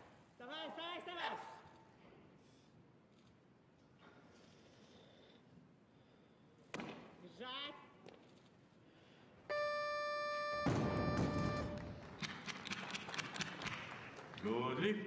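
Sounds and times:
electronic beep: 9.5 - 11.9
crowd cheering and clapping: 10.8 - 14.8.

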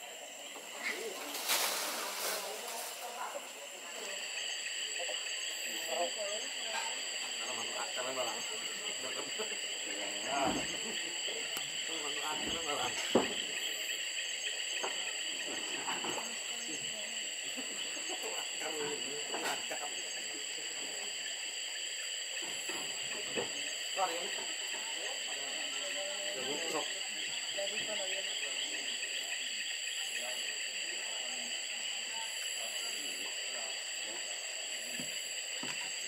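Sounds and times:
forest insects droning: 0.0 - 36.0
voices murmuring: 0.0 - 36.0.

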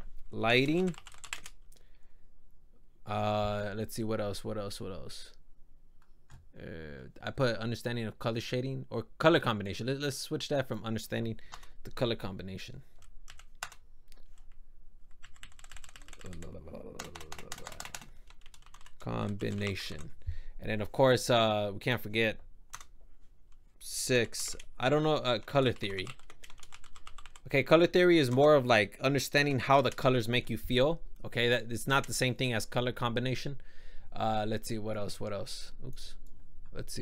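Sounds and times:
keyboard typing: 0.7 - 1.6, 12.9 - 20.1, 25.3 - 27.5
low voice murmuring: 16.2 - 17.9.

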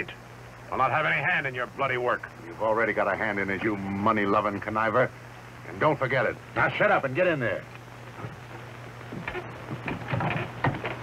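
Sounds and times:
low steady hum: 0.0 - 11.0
wooden knocks: 9.2 - 11.0.

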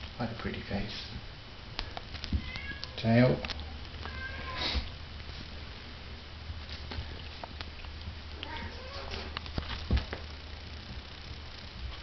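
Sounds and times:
kitten meowing: 2.4 - 3.0, 4.0 - 4.8, 8.3 - 9.4.

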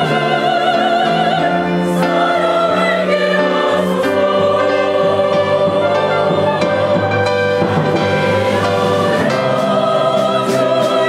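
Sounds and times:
church choir singing a hymn: 0.0 - 11.0
orchestral accompaniment: 0.0 - 11.0.

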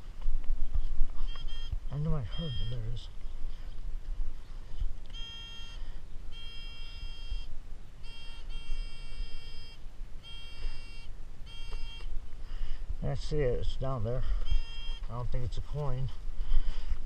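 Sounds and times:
metal detector alert tone: 1.2 - 3.1, 5.1 - 12.1, 13.6 - 16.2.

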